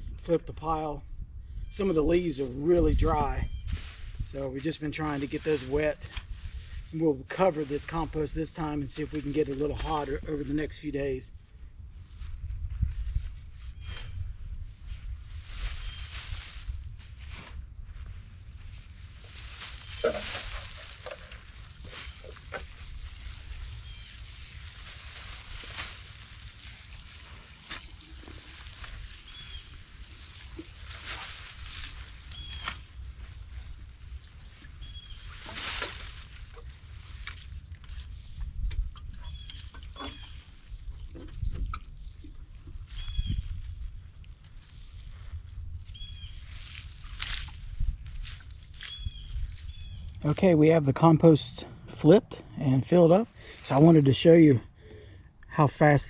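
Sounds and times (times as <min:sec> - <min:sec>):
dry leaves rustling and crunching: 0:14.8 - 0:38.6, 0:39.3 - 0:41.0, 0:42.0 - 0:50.1.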